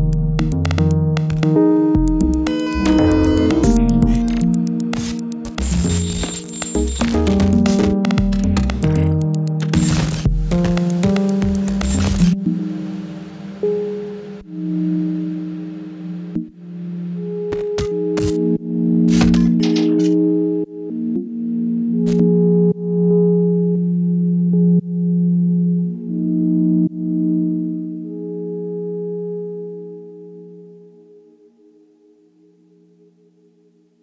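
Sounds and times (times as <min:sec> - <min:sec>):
synthesizer playing sustained chords: 0:00.0 - 0:34.0.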